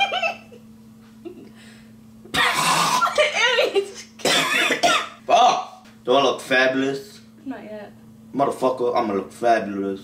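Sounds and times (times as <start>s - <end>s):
harsh cough: 2.3s - 3.2s, 4.2s - 5.2s.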